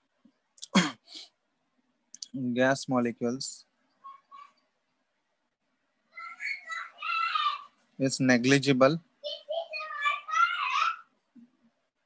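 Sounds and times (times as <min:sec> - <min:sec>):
person sneezing: 0:00.6 - 0:01.3.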